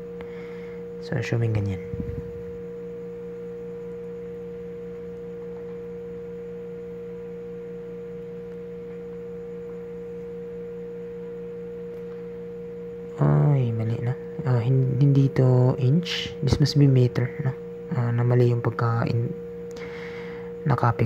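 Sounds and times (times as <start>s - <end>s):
low hum: 0.0s - 21.0s
pure tone: 0.0s - 21.0s.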